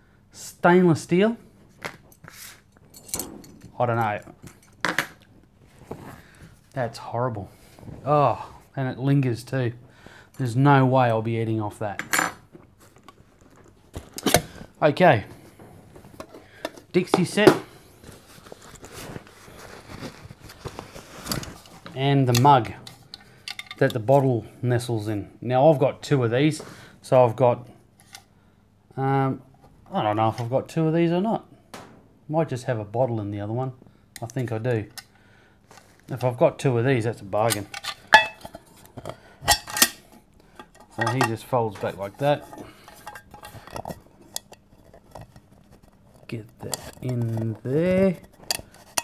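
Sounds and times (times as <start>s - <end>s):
folding handle moving: 2.9s - 5.2s
fabric rustling: 18.0s - 21.9s.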